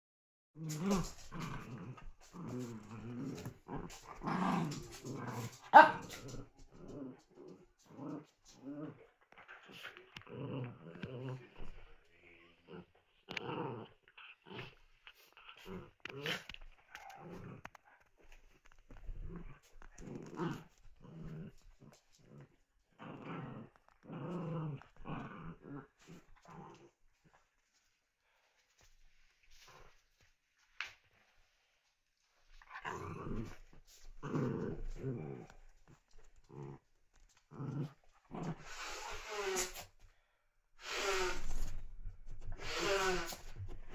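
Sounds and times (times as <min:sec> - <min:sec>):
small dogs growling: 0:00.6 - 0:27.5, 0:32.6 - 0:40.0, 0:40.8 - 0:43.9.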